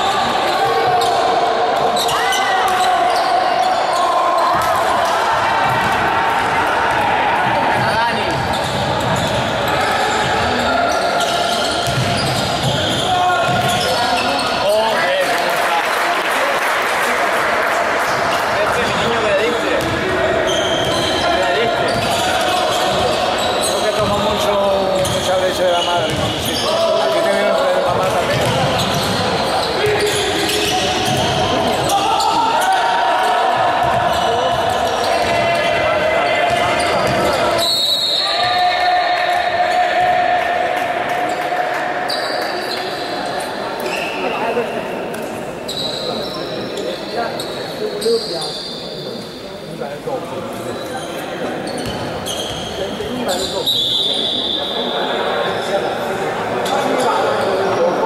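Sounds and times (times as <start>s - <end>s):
players' voices: 0.0s - 58.0s.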